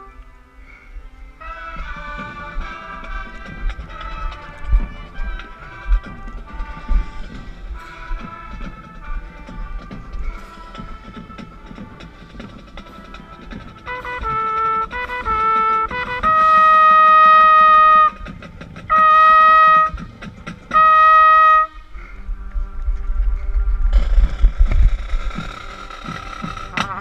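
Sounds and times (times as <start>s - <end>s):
trumpet notes: 0.0s - 22.2s, 26.3s - 27.0s
marching band playing: 1.3s - 21.9s, 25.4s - 27.0s
drum hits: 9.8s - 21.7s.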